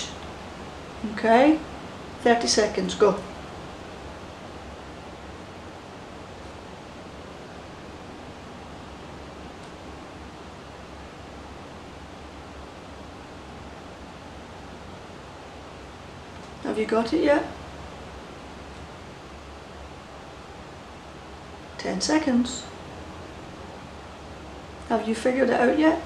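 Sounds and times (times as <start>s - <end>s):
faint low hum: 0.0s - 26.0s
room tone hiss: 0.0s - 26.0s.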